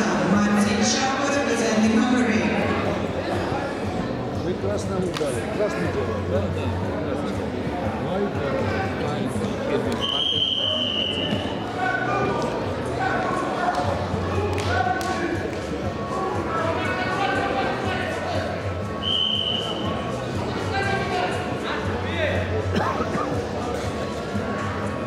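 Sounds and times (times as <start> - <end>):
indistinct voices in a hall: 0.0 - 25.0
high steady whistle tone: 10.0 - 11.6, 19.0 - 20.0.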